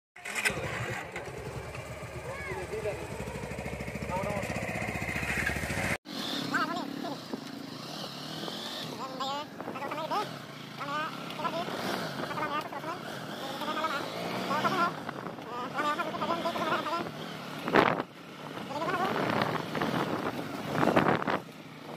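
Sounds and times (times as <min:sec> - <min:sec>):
motorcycle engines idling: 0:00.2 - 0:21.9
person speaking: 0:08.9 - 0:17.1.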